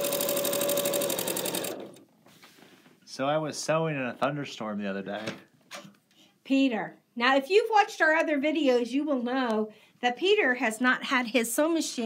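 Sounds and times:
sewing machine stitching: 0:00.0 - 0:02.0.

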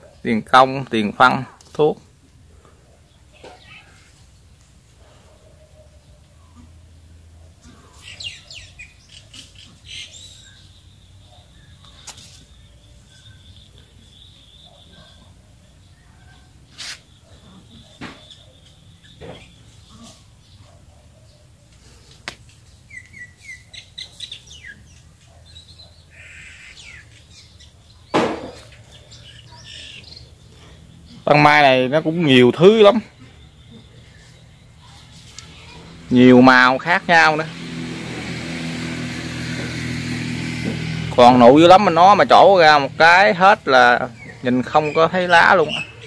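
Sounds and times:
small bird chirping: 0:03.0 - 0:04.6, 0:07.6 - 0:37.4, 0:41.7 - 0:46.0.

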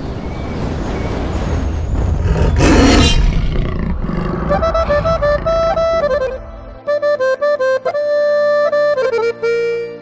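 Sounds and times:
deep rumbling: 0:01.2 - 0:07.0
big cat roaring: 0:02.2 - 0:05.8
music: 0:04.4 - 0:10.0.

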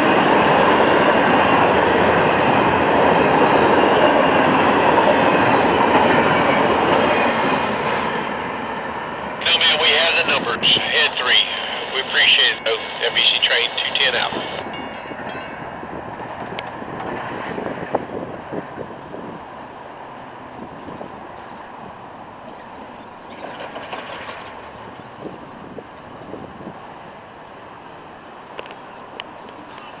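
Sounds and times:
freight train rumble: 0:00.0 - 0:30.0
train wheel clicks: 0:16.2 - 0:17.5, 0:23.3 - 0:24.8.

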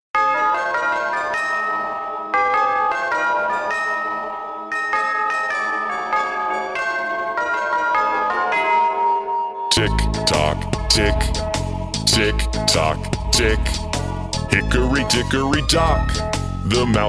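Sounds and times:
bell chimes playing melody: 0:00.2 - 0:11.6.

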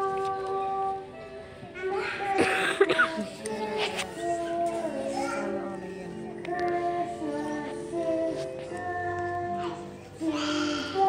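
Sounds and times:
young children singing in unison: 0:00.0 - 0:11.0.

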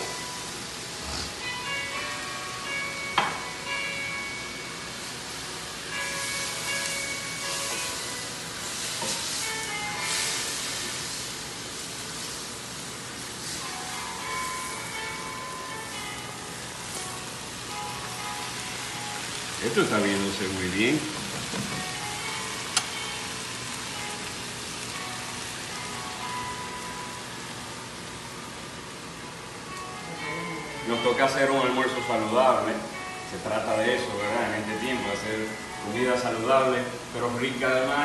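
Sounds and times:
soft background music: 0:00.0 - 0:38.0
vegetables sizzling in a wok: 0:00.0 - 0:38.0.

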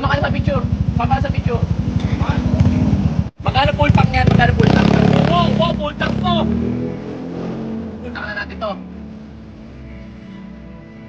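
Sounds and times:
vehicle engine idling: 0:00.0 - 0:06.4
voices talking: 0:00.0 - 0:10.0.

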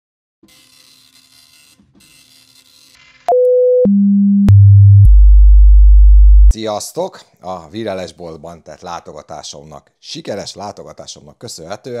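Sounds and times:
synthesized tone stepping down: 0:03.8 - 0:06.5.

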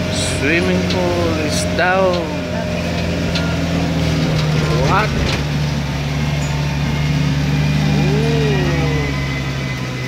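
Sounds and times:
road noise: 0:00.0 - 0:10.0
vehicle engine running: 0:00.0 - 0:10.0.

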